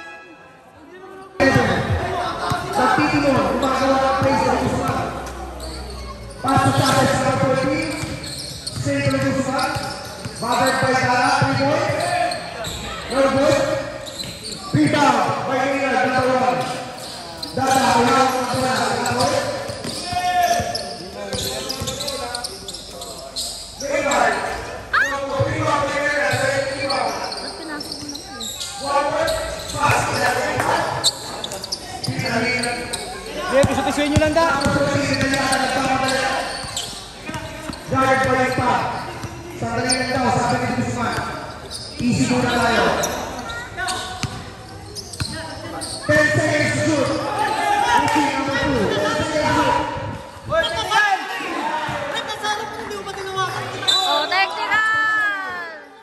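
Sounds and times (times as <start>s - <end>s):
voices calling out: 1.0s - 55.9s
basketball bouncing on concrete: 33.6s - 39.4s, 44.2s - 44.5s.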